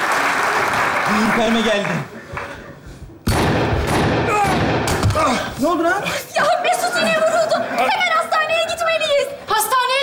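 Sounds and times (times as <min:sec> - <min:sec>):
gunshot sound effect: 0:03.3 - 0:05.2.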